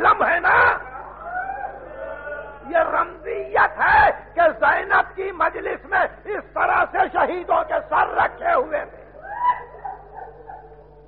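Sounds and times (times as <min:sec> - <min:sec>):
low steady hum: 0:00.0 - 0:11.0
people wailing and weeping: 0:00.2 - 0:02.6, 0:09.0 - 0:11.0.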